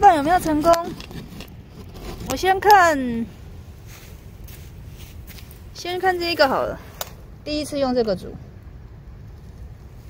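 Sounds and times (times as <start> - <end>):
woman speaking: 0.0 - 1.0, 2.3 - 3.3, 5.8 - 8.4.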